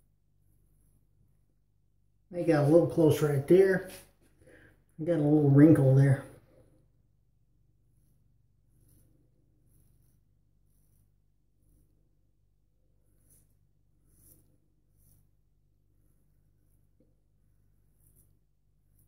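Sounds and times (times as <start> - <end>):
straight razor scraping stubble: 7.8 - 19.0.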